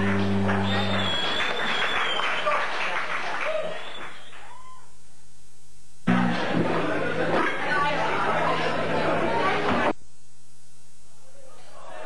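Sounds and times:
live music: 0.0s - 1.4s
voices: 6.1s - 10.0s.

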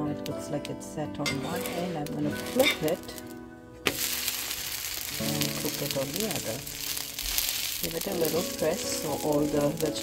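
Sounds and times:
background music: 0.0s - 10.0s
batter sizzling in oil: 1.2s - 10.0s.

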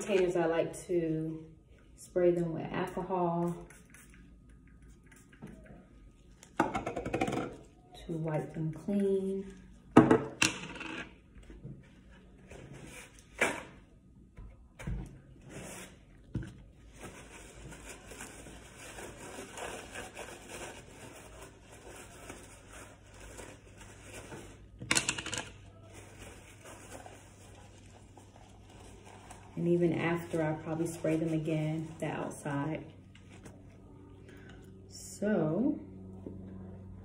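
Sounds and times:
paper towel rubbing and rustling: 16.8s - 24.7s, 25.9s - 33.7s.

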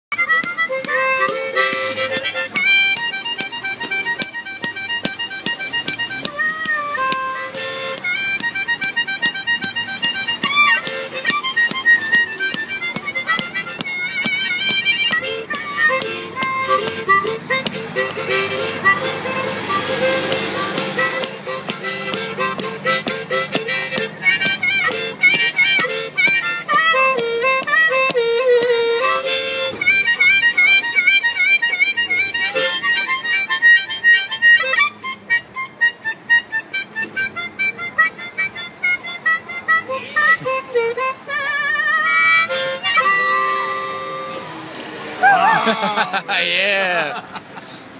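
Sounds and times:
harmonica playing blues: 0.1s - 47.9s.

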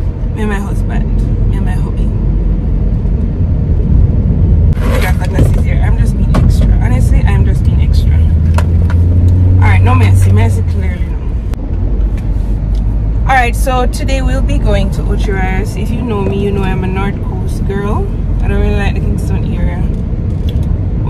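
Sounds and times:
deeper drone: 0.0s - 21.0s
road and engine rumble in car: 0.0s - 21.0s.

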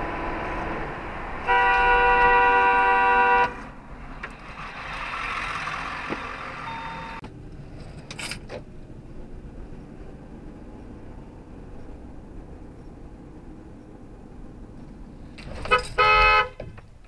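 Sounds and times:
car road and engine noise: 0.0s - 17.0s.

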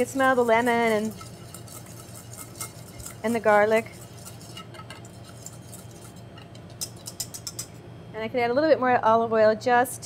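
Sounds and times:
whisk ticking against metal bowl: 0.0s - 7.8s
low steady hum: 0.0s - 10.0s.

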